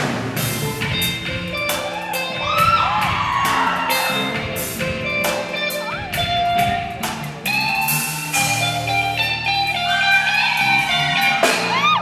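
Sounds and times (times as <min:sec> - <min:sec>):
live band playing: 0:00.0 - 0:12.0
electric guitar solo: 0:01.0 - 0:12.0.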